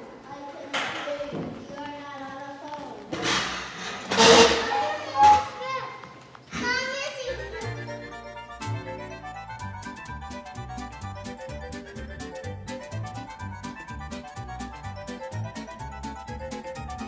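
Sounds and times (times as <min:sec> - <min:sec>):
children's voices and chatter: 0:00.0 - 0:09.2
background music: 0:06.6 - 0:17.0.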